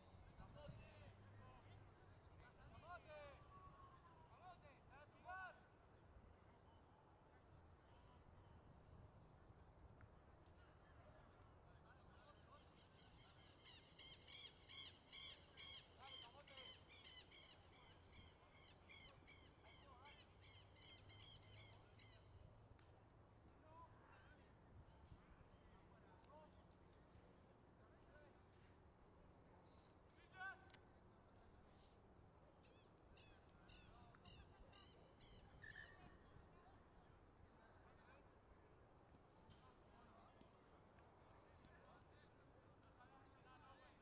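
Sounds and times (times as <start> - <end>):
high-pitched bird calls: 32.6 - 36.1.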